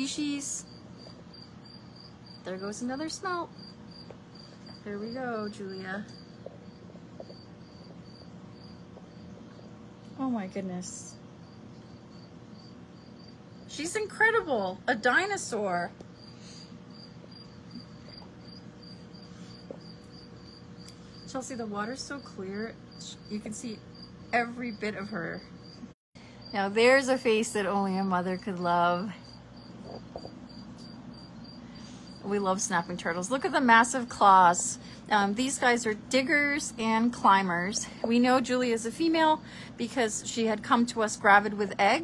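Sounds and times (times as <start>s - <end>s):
cricket chirping: 0.0s - 27.4s, 28.3s - 34.1s
low steady hum: 0.0s - 42.0s.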